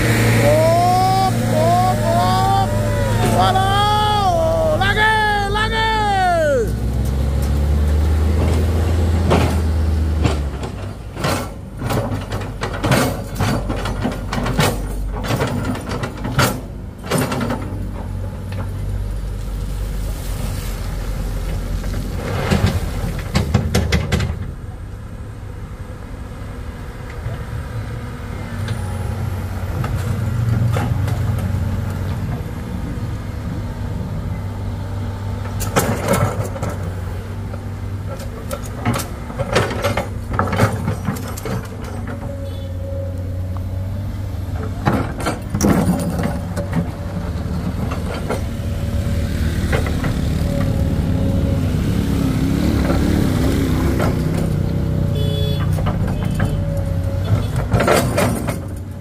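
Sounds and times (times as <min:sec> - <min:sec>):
excavator diesel engine running: 0:00.0 - 0:59.0
sharp knocks and clatters: 0:09.2 - 0:18.7, 0:38.1 - 0:42.3.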